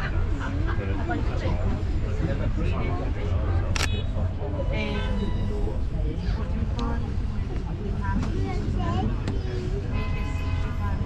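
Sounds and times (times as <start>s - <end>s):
tram cabin rumble: 0.0s - 11.0s.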